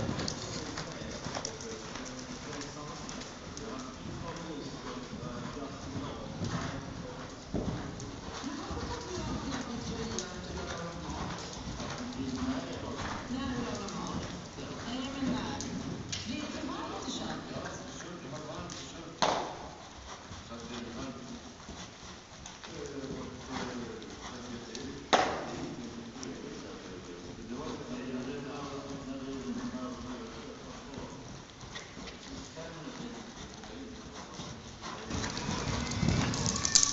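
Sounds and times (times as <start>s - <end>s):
hoofbeats on sand: 0.0s - 16.9s, 27.4s - 36.9s.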